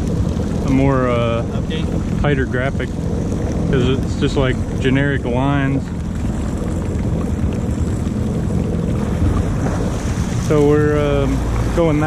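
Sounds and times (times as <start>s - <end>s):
watercraft engine idling: 0.0s - 12.0s.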